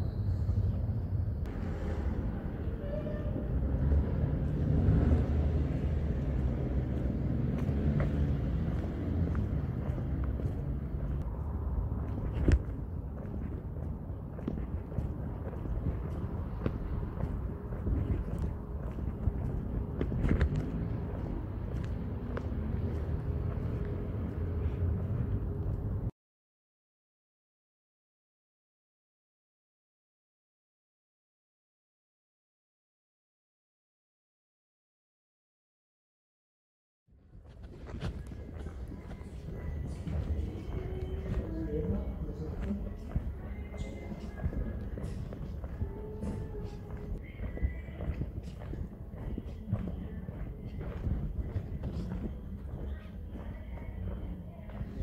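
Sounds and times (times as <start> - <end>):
low street rumble: 0.0 - 26.1, 37.1 - 55.0.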